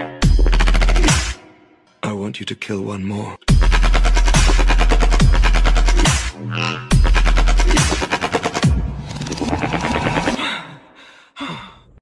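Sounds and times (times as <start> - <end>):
electronic music: 0.0 - 1.6, 3.5 - 10.4
breathy vocal gasp: 10.4 - 12.0.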